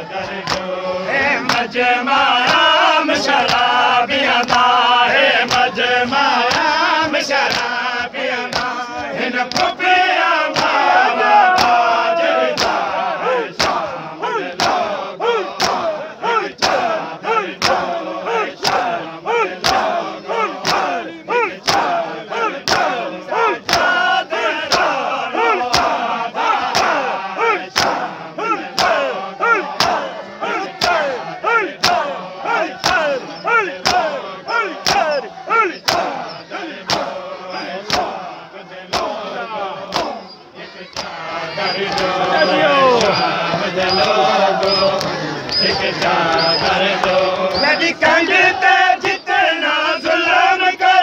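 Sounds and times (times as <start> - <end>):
men chanting together: 0.0 - 51.0.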